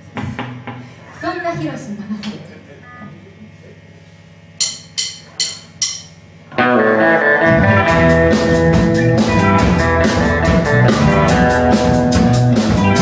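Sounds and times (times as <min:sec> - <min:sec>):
rock band playing: 0:06.5 - 0:13.0.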